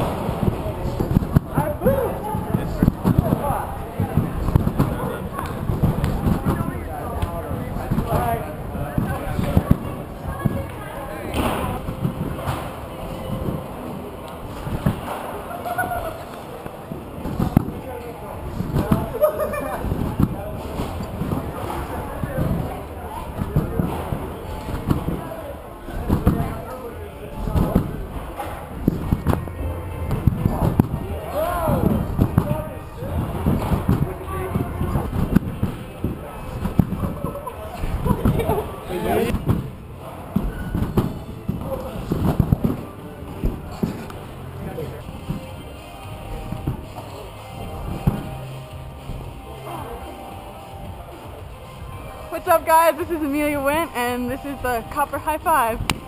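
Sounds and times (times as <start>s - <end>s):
trampoline beds thudding: 0.0s - 13.7s, 17.1s - 50.0s.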